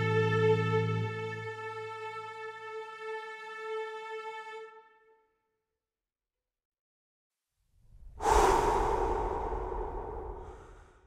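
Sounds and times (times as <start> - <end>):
breathy exhale: 8.1 - 11.0.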